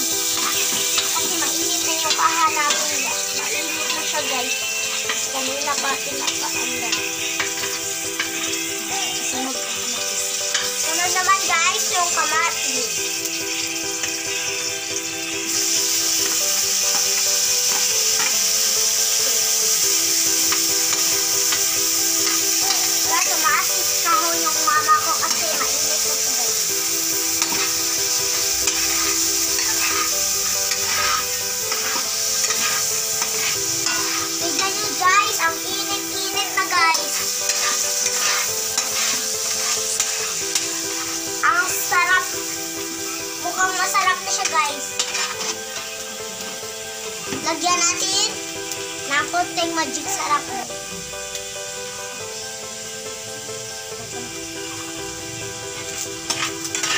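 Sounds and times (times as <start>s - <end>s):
tomatoes sizzling in oil: 0.0s - 56.9s
metal spatula stirring: 0.1s - 11.1s, 16.2s - 41.9s, 44.3s - 46.0s, 55.8s - 56.9s.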